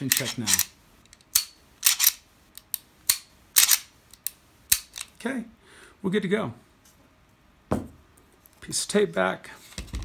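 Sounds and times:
pistol metallic clicks: 0:00.0 - 0:05.1.

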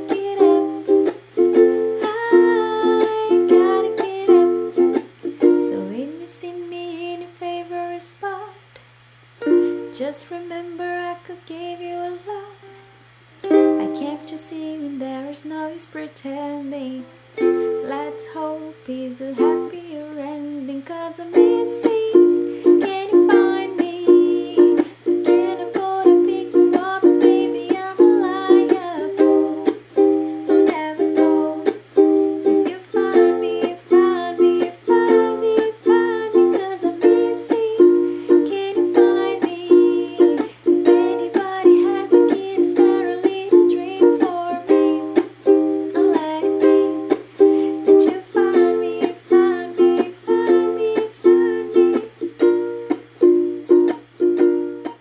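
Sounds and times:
ukulele strumming chords: 0:00.0 - 0:08.4, 0:09.4 - 0:55.0.

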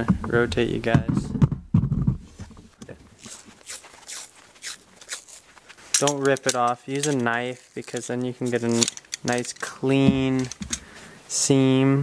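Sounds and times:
low rumbling handling noise: 0:00.0 - 0:03.2, 0:04.9 - 0:11.0.

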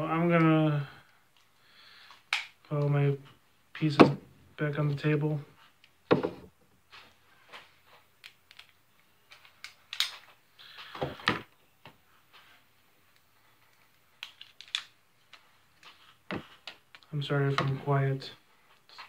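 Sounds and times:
plastic toy parts clicking: 0:14.2 - 0:14.9.

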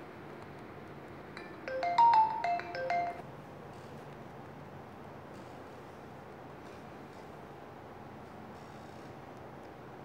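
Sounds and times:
electronic alert melody: 0:01.4 - 0:03.2.

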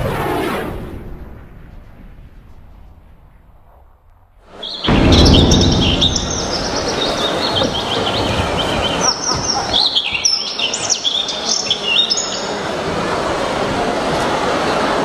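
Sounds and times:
birdsong over sound system: 0:04.5 - 0:12.7
loud noisy background: 0:04.5 - 0:15.0.

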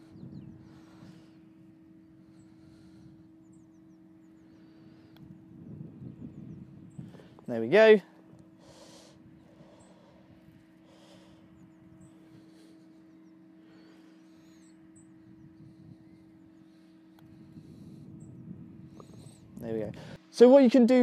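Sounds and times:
steady low hum: 0:00.0 - 0:21.0
faint bird chirps: 0:11.4 - 0:17.2.

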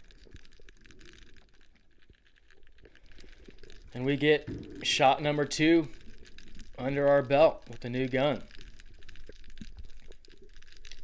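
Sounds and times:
small clicks and crackles underwater: 0:00.0 - 0:11.0.

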